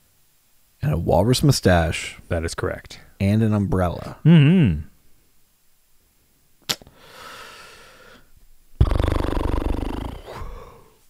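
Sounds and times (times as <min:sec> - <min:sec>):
person groaning: 0:04.2 - 0:04.8, 0:08.8 - 0:11.0
person exhaling breathily: 0:06.9 - 0:11.0.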